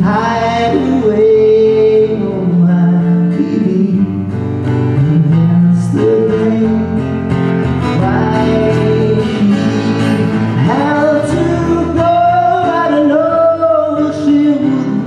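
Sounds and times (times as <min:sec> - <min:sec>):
acoustic guitar chords: 0:00.0 - 0:15.0
man singing: 0:00.0 - 0:15.0.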